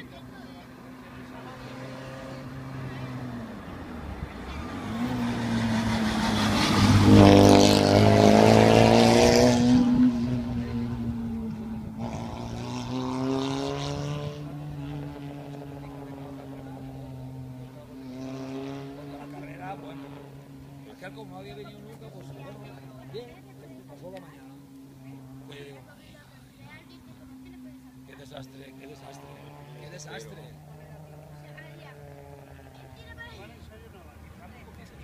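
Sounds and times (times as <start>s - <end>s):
rally car engine passing: 0.0s - 35.0s.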